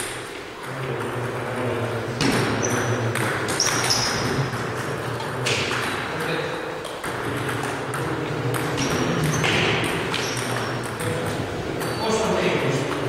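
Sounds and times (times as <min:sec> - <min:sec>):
table tennis balls clicking: 0:00.0 - 0:13.0.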